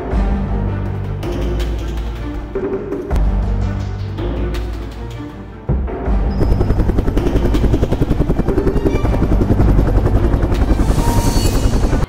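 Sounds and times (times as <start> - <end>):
fast pulsing intro music: 6.1 - 12.0.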